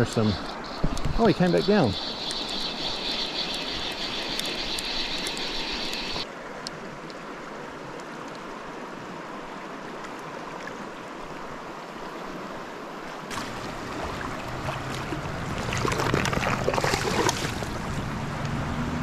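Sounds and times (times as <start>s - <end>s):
river water running over riffle: 0.0s - 19.0s.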